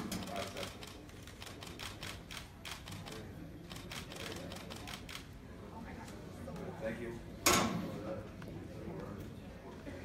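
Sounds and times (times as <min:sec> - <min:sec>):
camera shutters clicking rapidly: 0:00.1 - 0:05.3.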